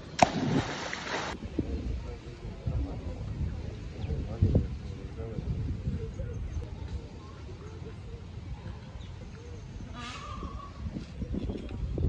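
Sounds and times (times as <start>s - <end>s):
faint distant voices: 1.3s - 12.0s.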